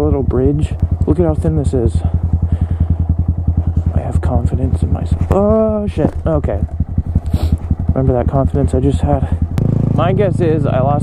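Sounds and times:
motorcycle engine running at low revs: 0:00.0 - 0:11.0.

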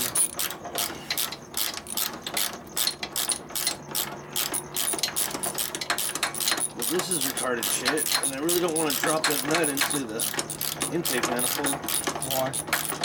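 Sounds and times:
ratchet wrench clicking: 0:00.0 - 0:13.0.

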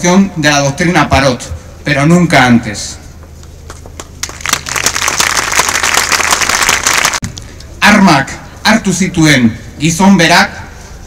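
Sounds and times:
audience applauding: 0:04.2 - 0:07.2.

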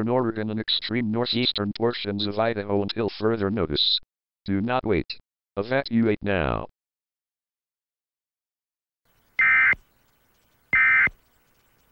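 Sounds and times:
buzzing digital squawks: 0:09.4 - 0:09.8, 0:10.7 - 0:11.2.

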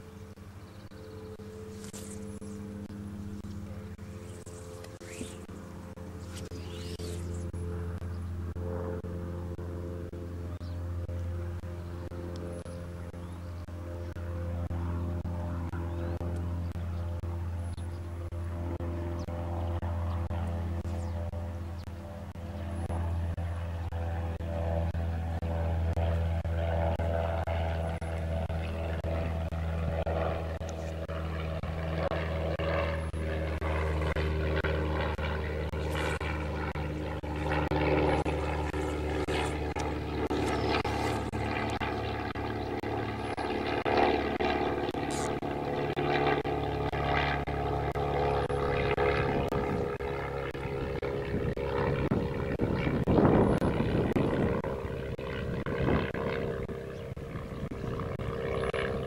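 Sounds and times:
engine drone: 0:00.0 - 0:59.0.

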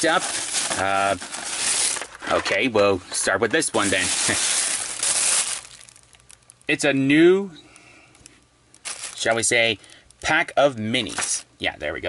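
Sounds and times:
plastic bag rustling: 0:00.0 - 0:06.5, 0:08.8 - 0:09.8, 0:11.0 - 0:11.5.

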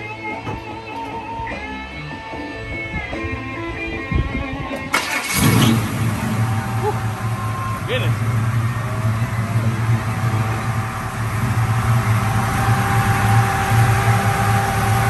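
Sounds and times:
guitar music: 0:00.0 - 0:06.1
engine cranking and starting: 0:04.9 - 0:15.0
engine idling: 0:04.9 - 0:15.0.

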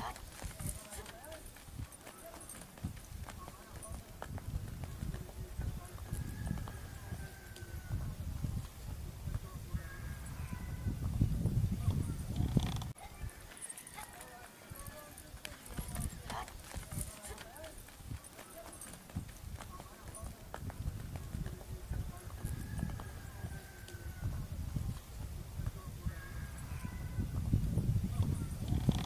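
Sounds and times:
donkey hooves clopping on dirt: 0:00.0 - 0:11.1, 0:11.7 - 0:27.0, 0:28.0 - 0:29.0.

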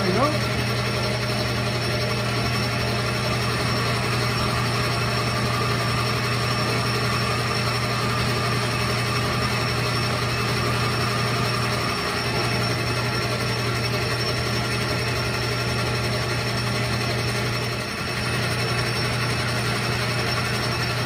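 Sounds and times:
metal lathe humming: 0:00.0 - 0:21.0.

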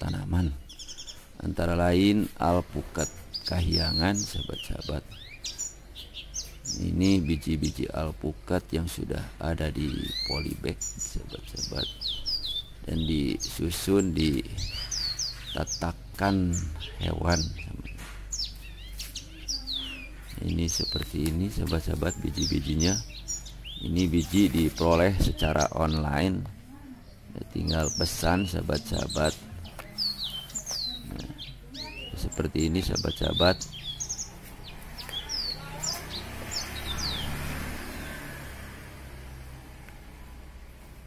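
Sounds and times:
small birds chirping: 0:00.0 - 0:41.0
passing motor vehicle hum: 0:02.6 - 0:41.0.

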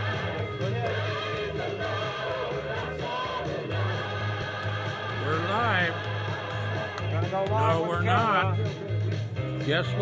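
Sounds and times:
choir singing: 0:00.0 - 0:07.0
low musical accompaniment: 0:00.0 - 0:10.0.

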